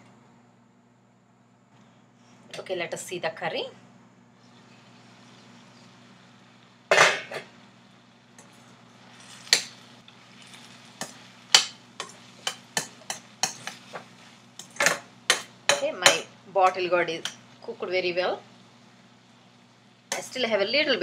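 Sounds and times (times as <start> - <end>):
metal spoon scraping steel pan: 12.0 - 14.0.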